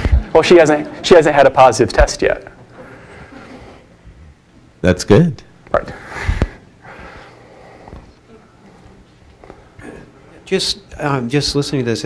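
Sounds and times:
noisy breath close to microphone: 0:02.7 - 0:04.3, 0:05.8 - 0:10.4.

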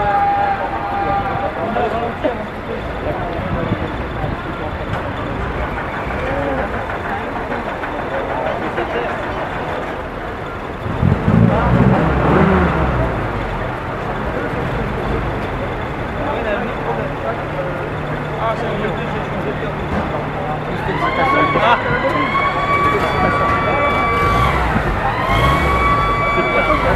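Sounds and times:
low steady engine hum: 0:00.0 - 0:26.9
street crowd chatter: 0:00.0 - 0:26.9
military vehicle engine passing: 0:00.6 - 0:26.9.

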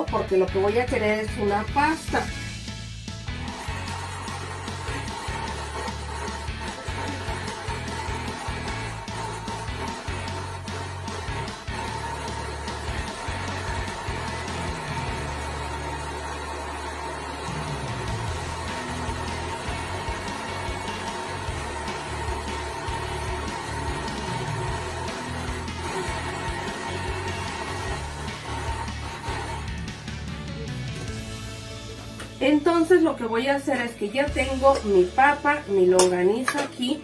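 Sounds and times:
background music: 0:00.0 - 0:37.0
blender grinding thick paste: 0:00.1 - 0:31.5.

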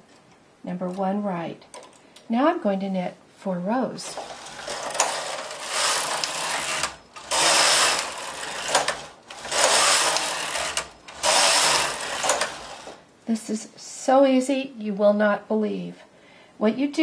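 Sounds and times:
knitting machine carriage passes: 0:04.0 - 0:13.0.

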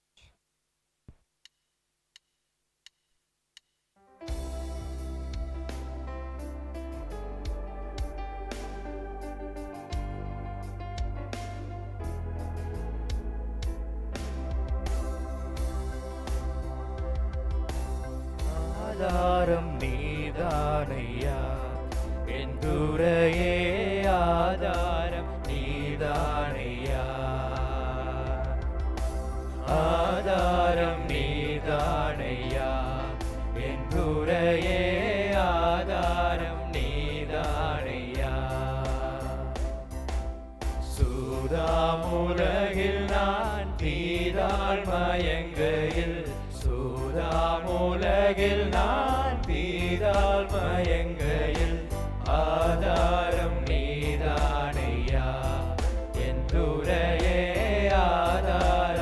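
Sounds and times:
low accompaniment: 0:04.3 - 0:59.0
male vocal group singing gospel: 0:18.4 - 0:40.0, 0:40.8 - 0:59.0.

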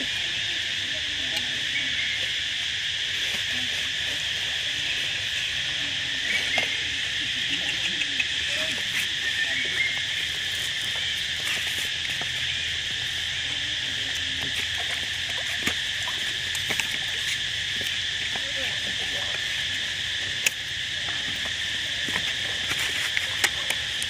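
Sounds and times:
insect chorus drone: 0:00.0 - 0:24.0
monkeys splashing in water: 0:03.2 - 0:24.0.

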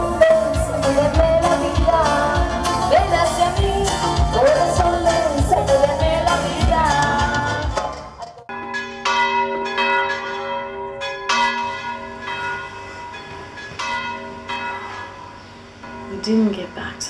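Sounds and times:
church bell ringing: 0:08.5 - 0:17.0.

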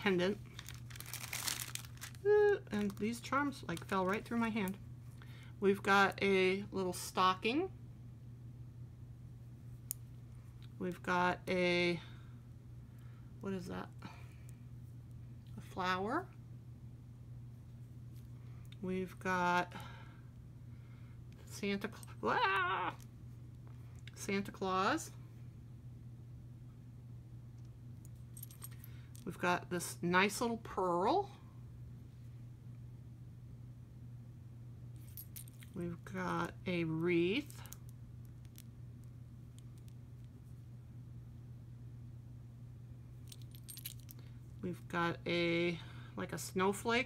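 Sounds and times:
metal charms clinking: 0:28.1 - 0:28.9, 0:35.0 - 0:35.8, 0:43.2 - 0:44.2.

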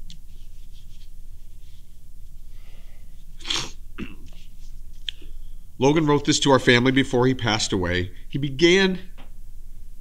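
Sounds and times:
man blowing nose: 0:03.4 - 0:04.5.

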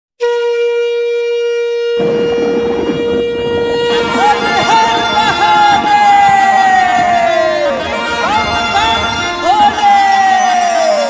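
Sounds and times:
conch shell blown: 0:00.2 - 0:11.0.

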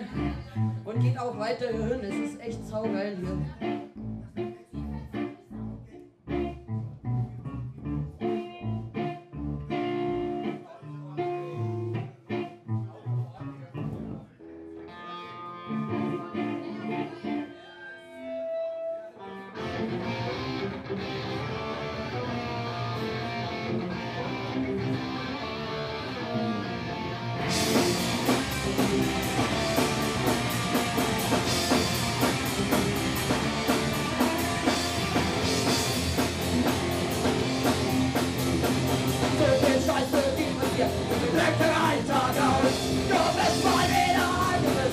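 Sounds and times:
electric guitar picking notes: 0:00.0 - 0:44.9
punk rock band playing: 0:19.5 - 0:44.9
drums with cymbals: 0:27.5 - 0:44.9.

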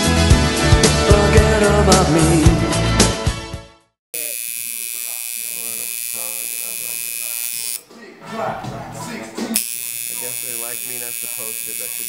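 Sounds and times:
pop song with singing: 0:00.0 - 0:03.3, 0:07.8 - 0:09.6
tattoo machine buzzing: 0:04.2 - 0:07.8, 0:09.6 - 0:12.0.

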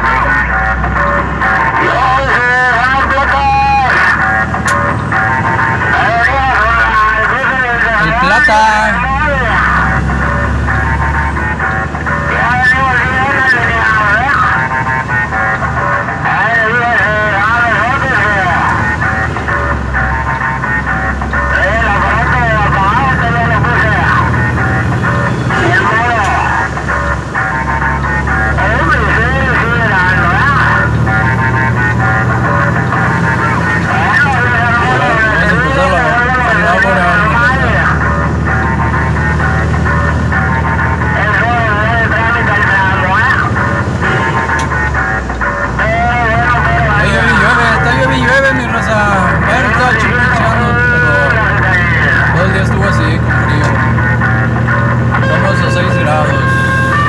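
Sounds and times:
car engine drone: 0:00.0 - 0:57.0
road noise: 0:00.0 - 0:57.0
song on car radio: 0:00.0 - 0:57.0.

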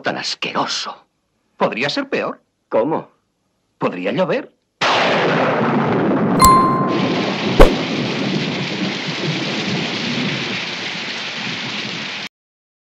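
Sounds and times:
sharp thunderclap: 0:04.8 - 0:10.6
heavy rain pouring: 0:07.0 - 0:12.3.

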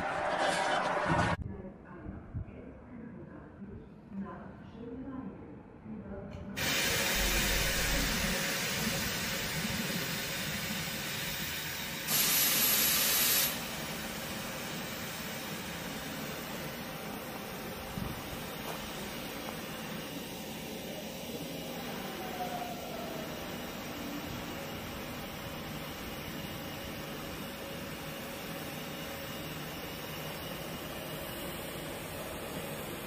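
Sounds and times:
aerosol spray can hissing: 0:12.1 - 0:13.7.

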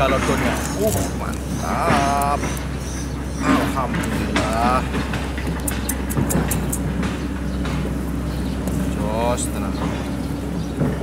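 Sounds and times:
engine humming: 0:00.0 - 0:11.0.

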